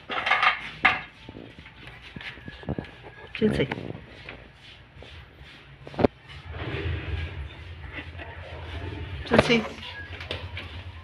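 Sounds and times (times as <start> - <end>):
dog shuffling on concrete: 0.0 - 11.0
low rustling: 3.9 - 11.0.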